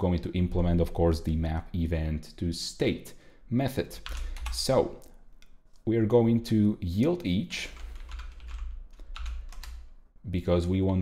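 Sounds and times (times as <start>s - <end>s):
typing on computer keyboard: 4.0s - 4.6s, 7.7s - 9.9s.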